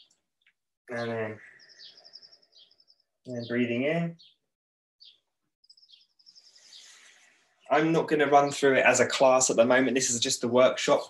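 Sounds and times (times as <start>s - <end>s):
faint birdsong chirps and trill: 0.0s - 11.0s.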